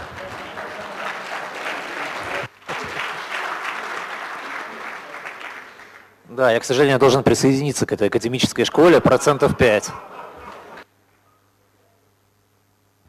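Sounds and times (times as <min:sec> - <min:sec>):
audience applauding: 0:00.0 - 0:06.2, 0:09.6 - 0:10.8.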